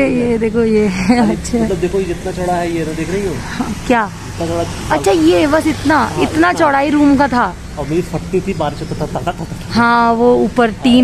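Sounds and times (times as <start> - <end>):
voices speaking: 0.0 - 11.0.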